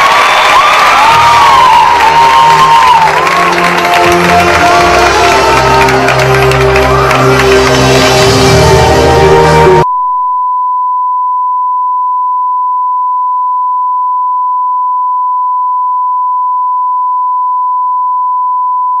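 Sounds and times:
live concert music: 1.0s - 9.8s.

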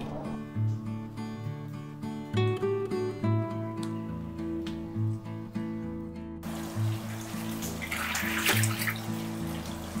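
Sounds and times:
background music: 0.0s - 10.0s
water splashing in a tank: 6.4s - 10.0s.

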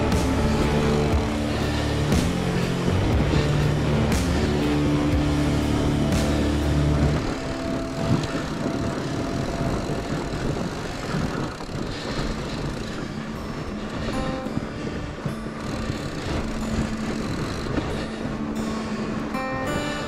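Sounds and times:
bike tyres rumbling over snow: 0.0s - 20.0s
quiet background music: 0.0s - 20.0s.

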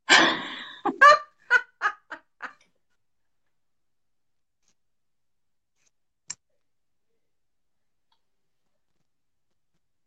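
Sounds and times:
woman laughing heartily: 0.1s - 2.6s.

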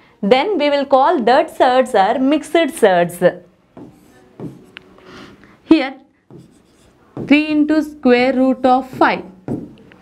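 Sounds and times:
stylus scratching on glass: 6.3s - 7.3s.

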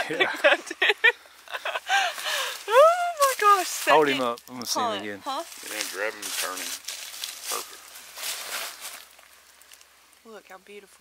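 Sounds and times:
dry leaves rustling: 1.6s - 10.8s.

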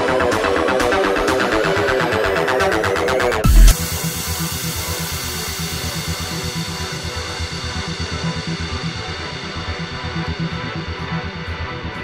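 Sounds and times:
background music with quick beat: 0.0s - 12.0s.

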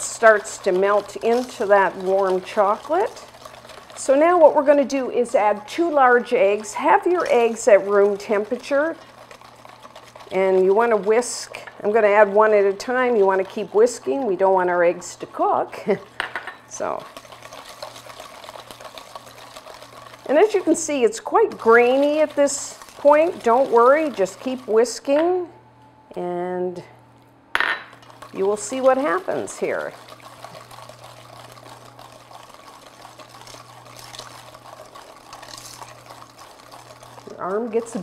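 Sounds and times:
whisk beating batter in metal bowl: 0.0s - 25.5s, 28.0s - 38.0s.

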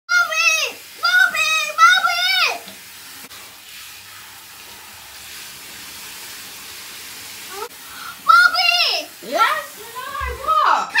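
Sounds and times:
shower water spraying: 0.1s - 11.0s.

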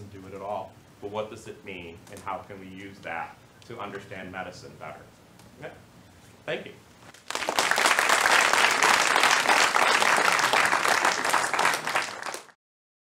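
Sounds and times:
audience applauding: 7.2s - 12.6s.

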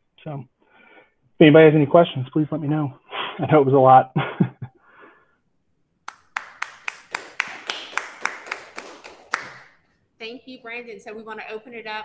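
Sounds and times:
hand clapping: 6.1s - 9.8s.

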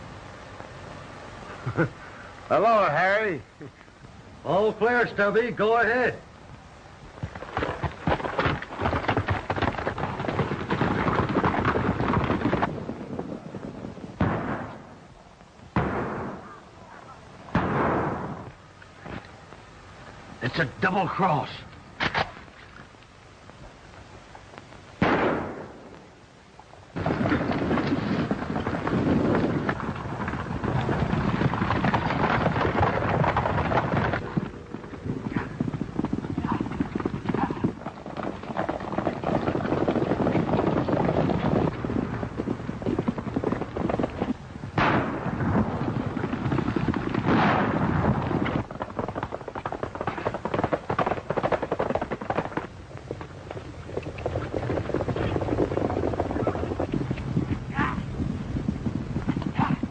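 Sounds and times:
galloping horse hooves: 1.4s - 59.9s
gunshots: 14.2s - 14.9s, 15.8s - 16.6s, 17.5s - 18.5s, 25.0s - 26.0s, 44.8s - 46.5s, 47.1s - 48.6s.

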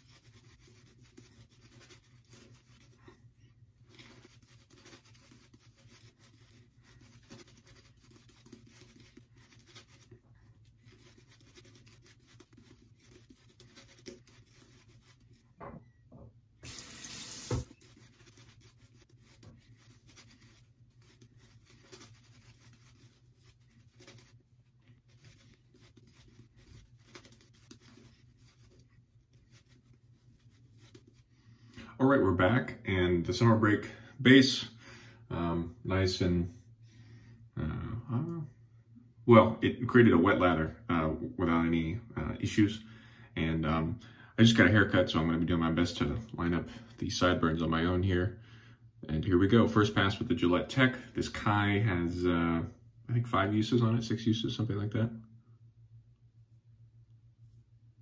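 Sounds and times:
shaving brush lathering: 0.0s - 15.6s, 16.6s - 31.8s.

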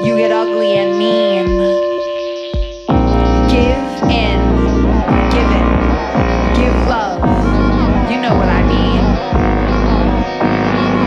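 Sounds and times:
downward synth pitch sweeps: 0.0s - 11.0s
sustained synth tones: 0.0s - 11.0s
deep synth bass drone: 2.9s - 11.0s.

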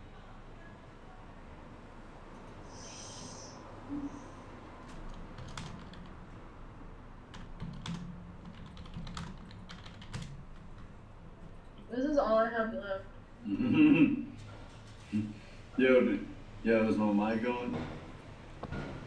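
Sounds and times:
keyboard typing: 4.8s - 6.3s, 7.3s - 11.9s.

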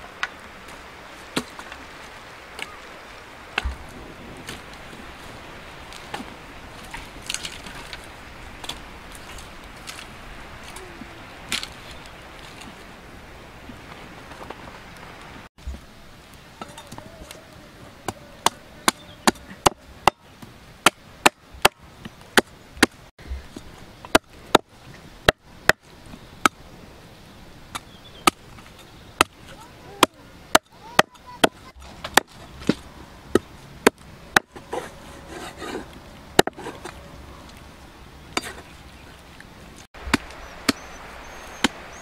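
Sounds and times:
cleaver chopping meat and bone: 36.4s - 36.7s.

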